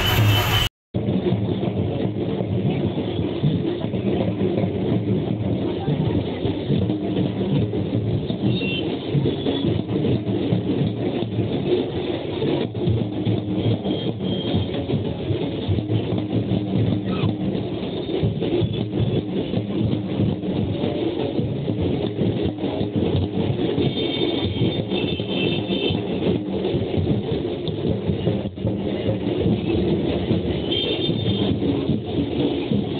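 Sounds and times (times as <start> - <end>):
short high tones: 0.0 - 0.7
drumming: 0.0 - 32.9
traffic noise: 0.0 - 32.9.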